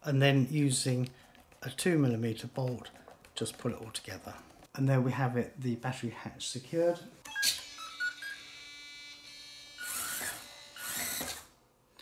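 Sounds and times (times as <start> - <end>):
small electric motors whirring: 7.4 - 11.6.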